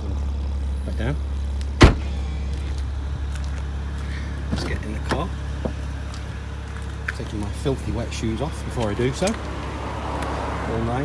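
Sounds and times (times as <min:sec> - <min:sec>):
car engine idling: 0:00.0 - 0:11.0
car boot lid slamming: 0:01.8 - 0:02.1.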